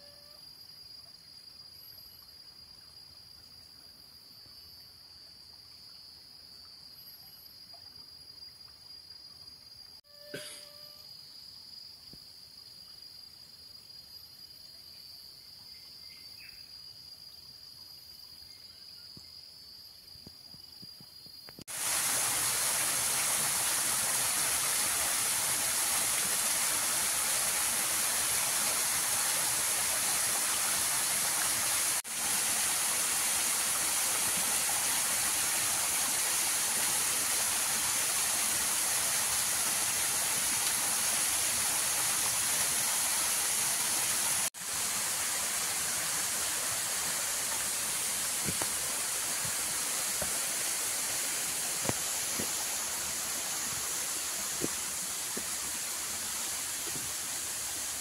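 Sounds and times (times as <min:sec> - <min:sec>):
waterfall splashing into pool: 0:21.7 - 0:58.0.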